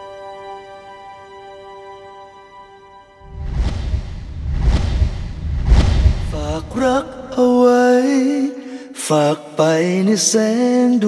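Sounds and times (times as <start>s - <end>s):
deep low rumble: 3.2s - 7.8s
whoosh: 3.2s - 7.9s.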